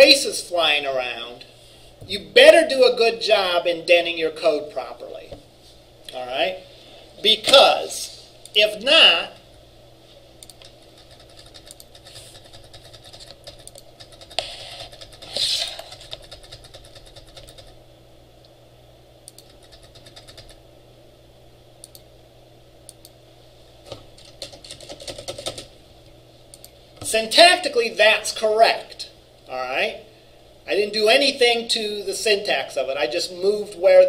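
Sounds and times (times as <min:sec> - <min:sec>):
low room hum: 0:00.0 - 0:34.0
keyboard typing: 0:10.4 - 0:17.8, 0:19.3 - 0:20.6, 0:23.9 - 0:25.7.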